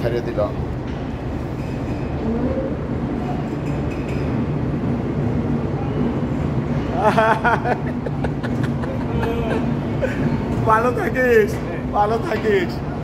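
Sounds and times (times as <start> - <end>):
train rumbling: 0.0 - 12.0.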